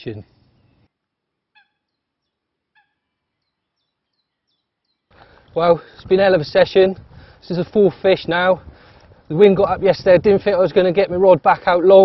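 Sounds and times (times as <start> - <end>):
faint bird calls: 0.2 - 5.6.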